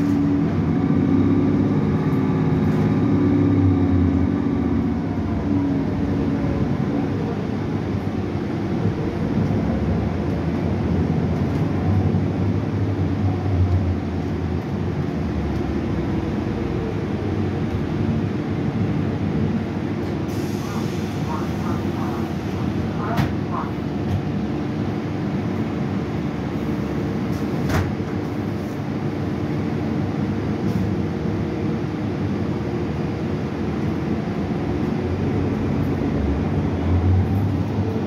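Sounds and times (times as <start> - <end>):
bus engine rumble: 0.0 - 38.0
road noise: 0.0 - 38.0.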